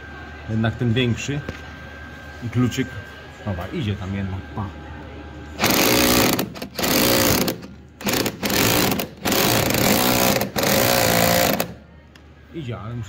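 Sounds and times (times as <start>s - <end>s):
impact wrench hammering: 5.6s - 11.8s.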